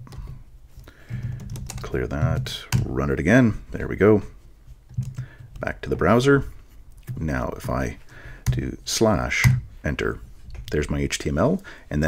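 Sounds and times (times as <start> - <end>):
keystrokes on computer keyboard: 1.2 - 1.9.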